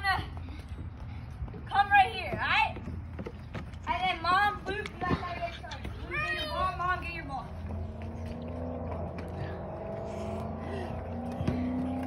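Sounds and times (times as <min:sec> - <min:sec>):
engine drone: 0:06.3 - 0:12.0.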